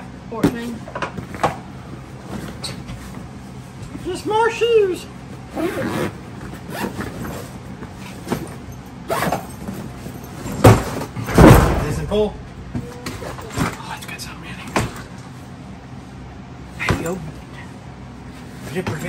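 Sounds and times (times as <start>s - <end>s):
suitcase thumping down: 9.2s - 13.8s.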